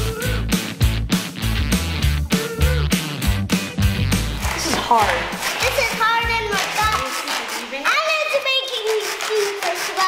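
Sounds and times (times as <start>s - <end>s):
young child talking: 4.8s - 10.0s.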